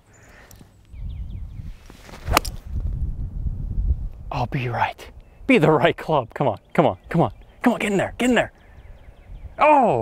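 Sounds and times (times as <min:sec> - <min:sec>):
golf club striking ball: 0:02.3 - 0:02.6.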